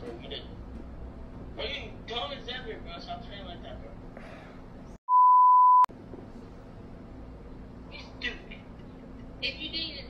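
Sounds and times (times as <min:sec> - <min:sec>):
electronic beep: 0:05.1 - 0:05.9.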